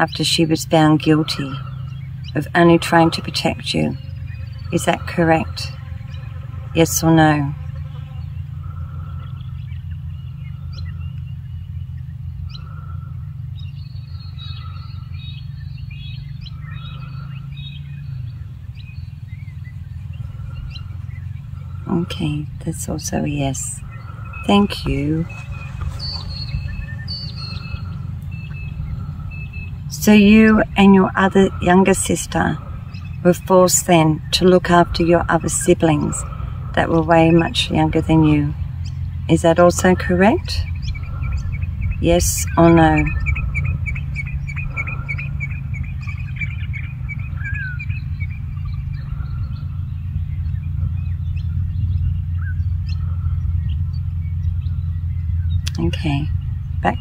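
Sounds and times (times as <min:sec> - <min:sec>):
birds chirping: 0:00.0 - 0:57.0
steady low rumble: 0:00.0 - 0:57.0.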